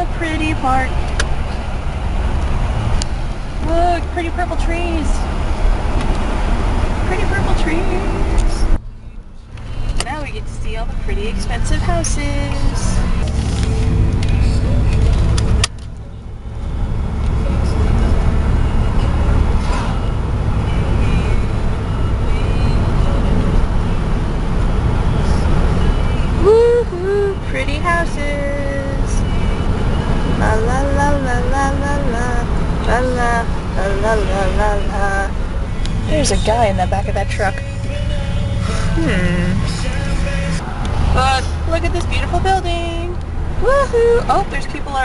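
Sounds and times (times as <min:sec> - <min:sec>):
car engine and tyre rumble: 0:00.0 - 0:45.0.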